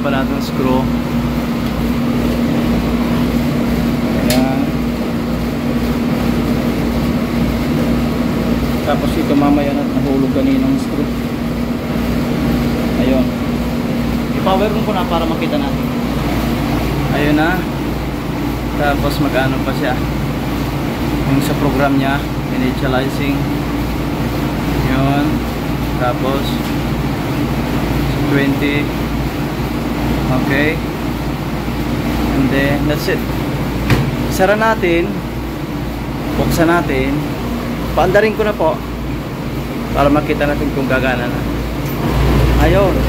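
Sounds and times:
low mechanical hum: 0:00.0 - 0:43.0
person speaking: 0:04.0 - 0:04.9, 0:08.8 - 0:11.3, 0:14.2 - 0:17.8, 0:42.2 - 0:43.0.

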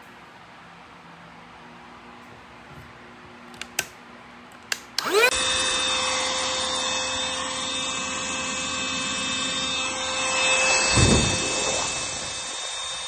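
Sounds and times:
handheld vacuum cleaner whining: 0:05.0 - 0:13.0.

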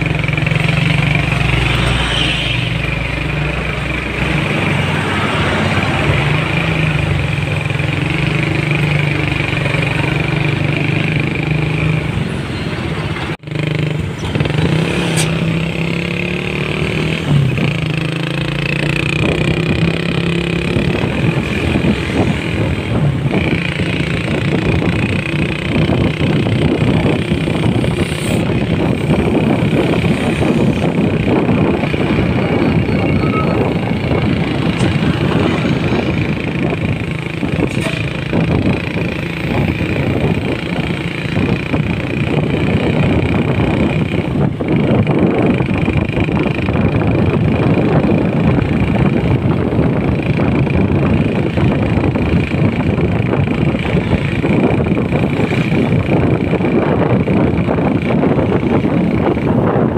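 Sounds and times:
road and wind noise: 0:00.0 - 0:59.9
vehicle engine hum: 0:00.0 - 0:59.9.

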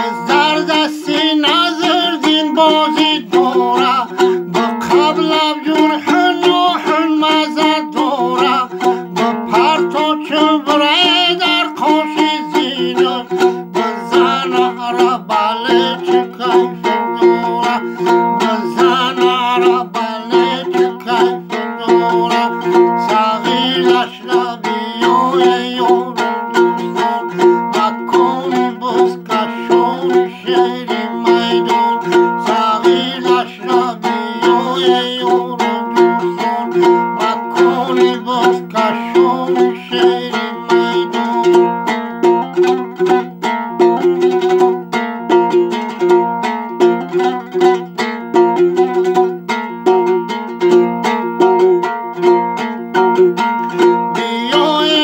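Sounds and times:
man singing: 0:00.0 - 0:51.9, 0:52.6 - 0:55.0
plucked lute: 0:00.0 - 0:55.0.

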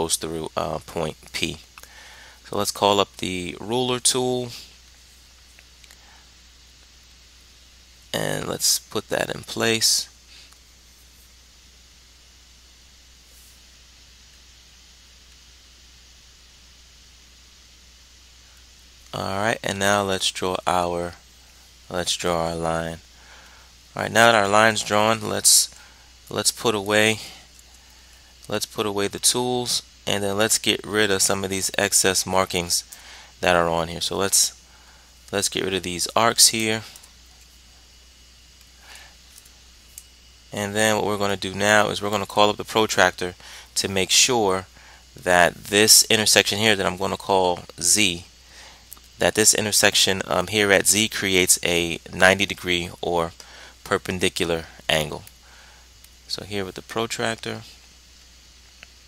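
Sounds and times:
faint steady hiss: 0:00.0 - 0:59.0
soft breath: 0:01.8 - 0:02.4, 0:32.9 - 0:33.4, 0:53.4 - 0:53.8.

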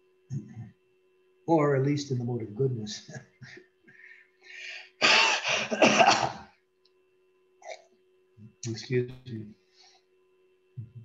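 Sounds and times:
man coughing: 0:05.0 - 0:06.5.

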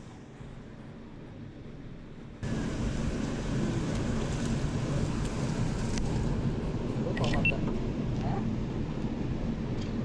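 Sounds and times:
low outdoor rushing noise: 0:00.0 - 0:10.0.

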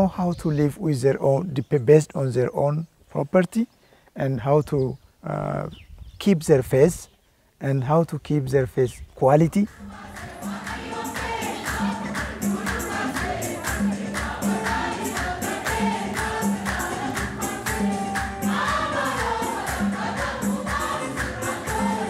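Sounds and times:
choir singing a hymn: 0:09.7 - 0:22.0
drum beat: 0:09.7 - 0:22.0
jingling percussion: 0:09.7 - 0:22.0.

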